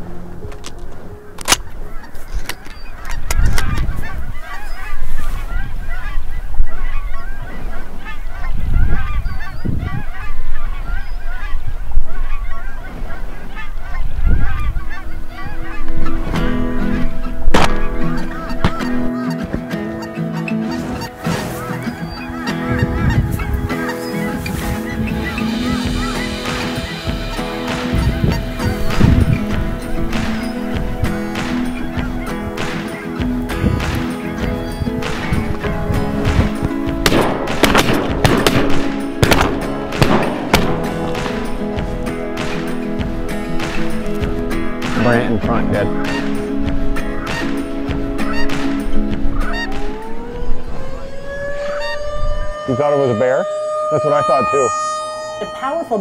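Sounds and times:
geese honking: 0.0s - 56.0s
background music held chords: 13.5s - 53.1s.

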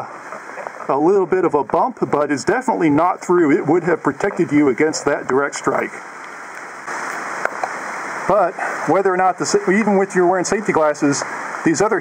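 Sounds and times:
rain on a cover: 0.0s - 12.0s.

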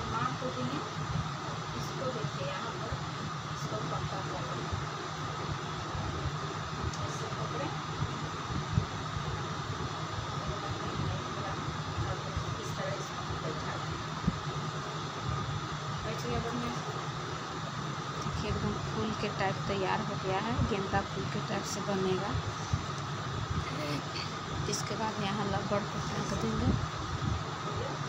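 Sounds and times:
low hum and hiss: 0.0s - 28.0s.

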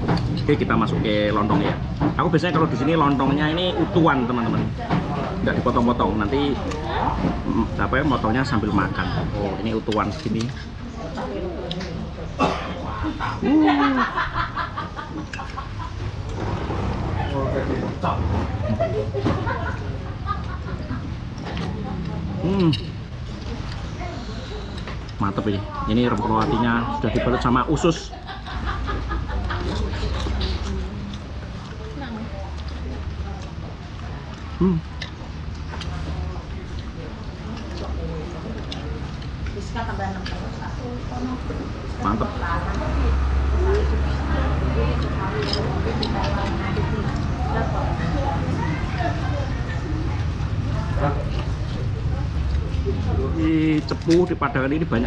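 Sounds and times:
faint background voices: 4.2s - 54.8s
low vehicle rumble: 10.7s - 25.8s.

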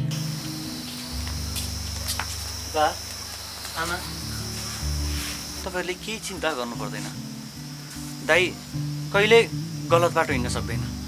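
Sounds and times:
crickets chirping: 0.0s - 11.0s
held background music notes: 0.0s - 11.0s.

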